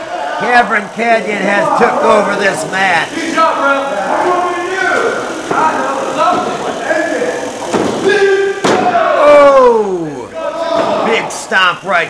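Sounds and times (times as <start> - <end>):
indistinct voices talking: 0.0 - 12.0
thud on wrestling ring mat: 8.6 - 9.0.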